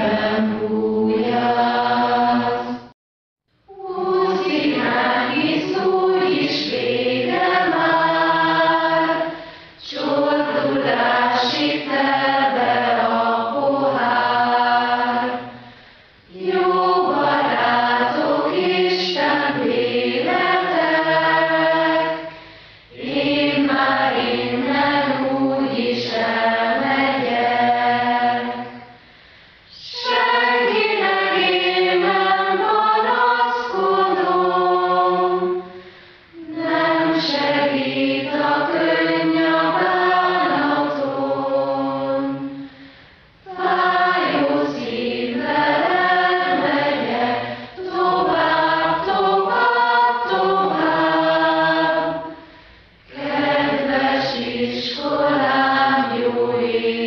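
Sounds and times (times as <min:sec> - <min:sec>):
choir singing: 0:00.0 - 0:03.0, 0:03.7 - 0:15.7, 0:16.3 - 0:29.0, 0:29.7 - 0:42.7, 0:43.4 - 0:57.0.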